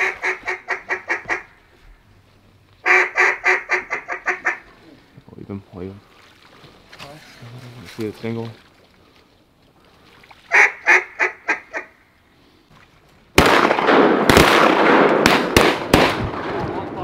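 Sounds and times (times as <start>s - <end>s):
duck call quacking: 0.0s - 1.5s, 2.8s - 4.6s, 10.5s - 11.9s
softer lower duck calls: 0.0s - 1.9s, 2.8s - 5.1s, 10.5s - 12.1s.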